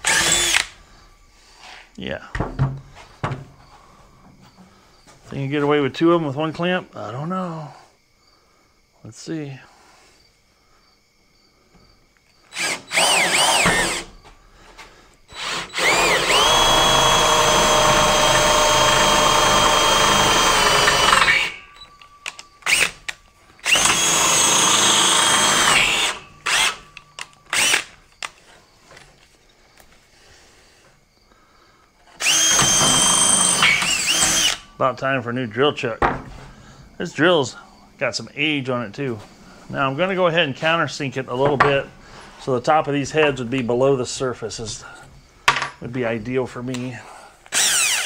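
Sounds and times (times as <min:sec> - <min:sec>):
cordless drill drilling: 0:00.0 - 0:00.8, 0:12.5 - 0:14.1, 0:15.3 - 0:28.0, 0:32.1 - 0:34.7, 0:47.5 - 0:48.0.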